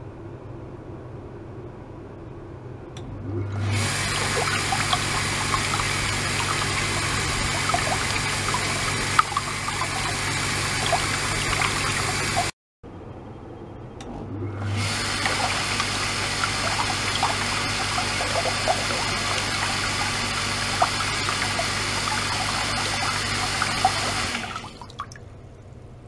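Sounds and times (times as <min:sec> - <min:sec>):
pump electric hum: 0:03.0 - 0:12.6, 0:14.0 - 0:26.0
water rushing and churning: 0:03.5 - 0:12.6, 0:14.7 - 0:25.3
small bubbles popping: 0:03.8 - 0:12.5, 0:15.0 - 0:25.3
water trickling: 0:03.8 - 0:12.5, 0:14.8 - 0:25.4.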